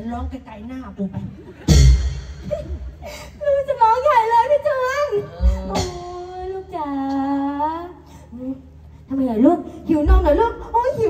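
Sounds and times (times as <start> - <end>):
person imitating baby crying: 5.1 - 6.7.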